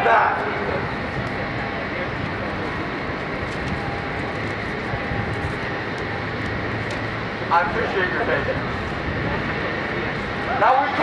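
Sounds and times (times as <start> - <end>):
steady engine drone: 0.0 - 11.0.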